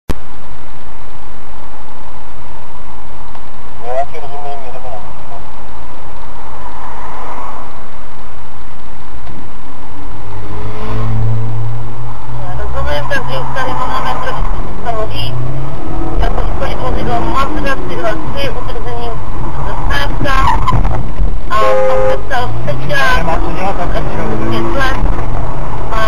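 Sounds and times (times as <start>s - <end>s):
car engine accelerating hard: 10.0s - 26.0s.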